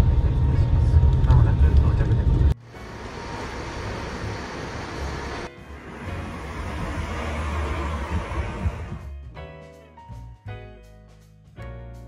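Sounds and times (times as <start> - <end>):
passing traffic rumble: 0.0 - 9.3.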